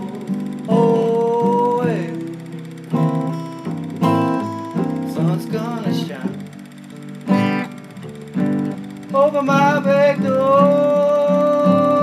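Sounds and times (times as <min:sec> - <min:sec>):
acoustic guitar blues: 0:00.0 - 0:12.0.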